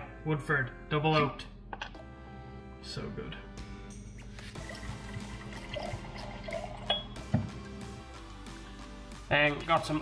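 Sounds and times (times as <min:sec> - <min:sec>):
background music: 0:00.0 - 0:10.0
liquid pouring into glass: 0:04.6 - 0:07.8.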